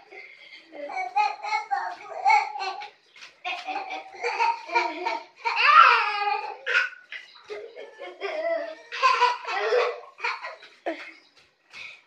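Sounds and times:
young children laughing: 0.0 - 11.3.

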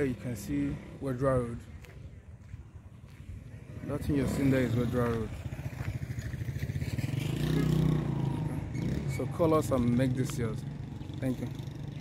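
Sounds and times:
motorcycle engine running: 3.1 - 12.0.

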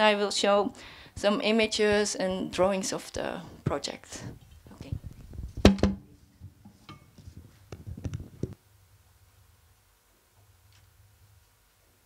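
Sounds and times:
microphone handling knocks: 4.8 - 6.1.

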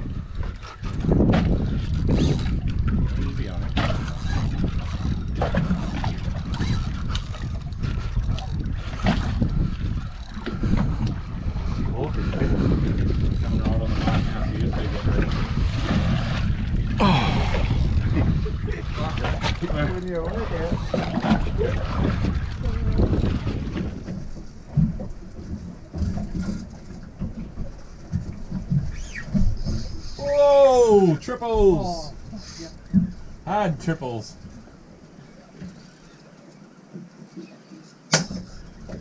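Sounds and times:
wind buffeting microphone: 0.0 - 35.7
water washing around boat: 0.0 - 39.0.

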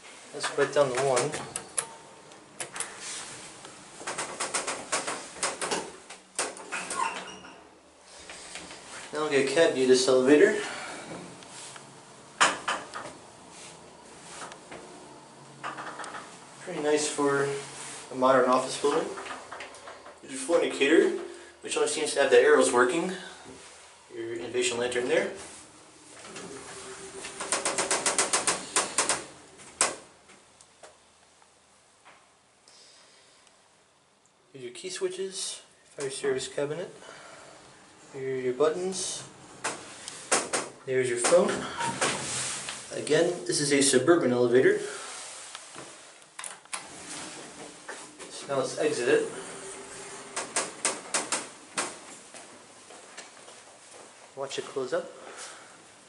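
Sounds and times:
sharp mechanical clicks: 27.4 - 30.0.

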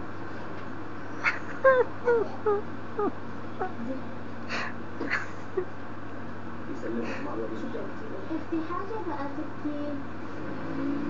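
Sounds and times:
child crying: 1.6 - 3.8.

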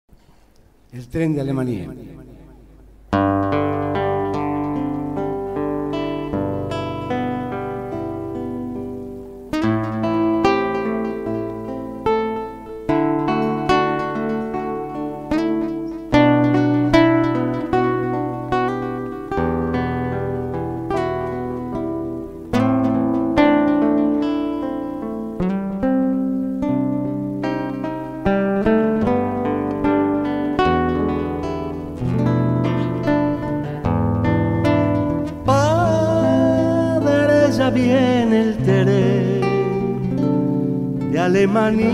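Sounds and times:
acoustic guitar plucking: 0.1 - 41.9.

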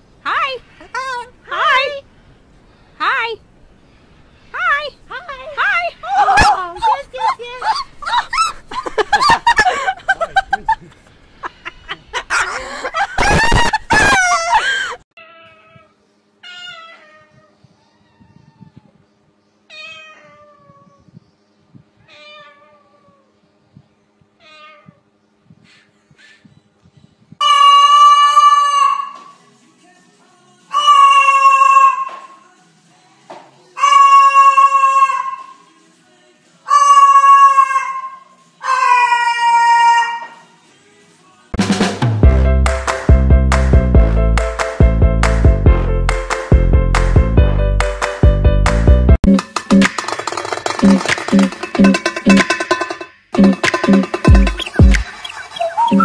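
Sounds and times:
cockatoo screeching: 6.0 - 8.6, 27.4 - 29.3, 30.7 - 32.3, 33.8 - 35.6, 36.7 - 40.4, 53.8 - 56.0
meow-like bird calls: 15.2 - 21.3, 21.9 - 23.4, 24.4 - 26.6.

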